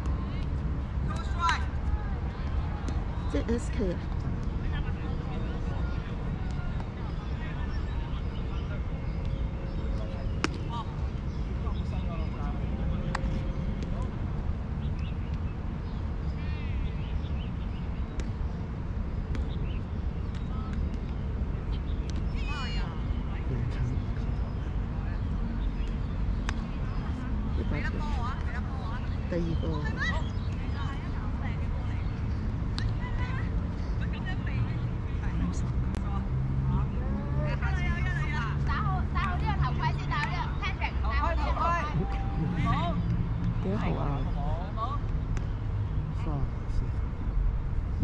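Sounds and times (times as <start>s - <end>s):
distant players calling: 35.2s - 45.2s.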